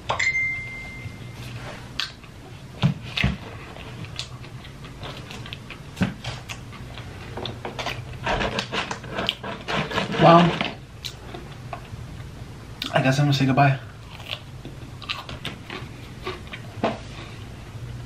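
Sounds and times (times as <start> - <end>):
paper boxes rustling: 8.2 - 10.8.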